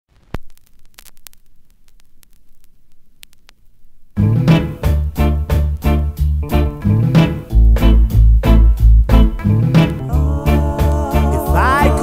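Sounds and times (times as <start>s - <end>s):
vinyl clicks and pops: 0.1s - 4.2s.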